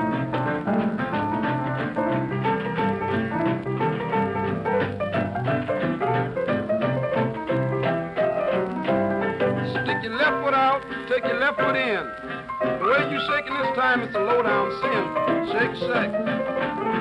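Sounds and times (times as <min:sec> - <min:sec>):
blues piano: 0:00.0 - 0:17.0.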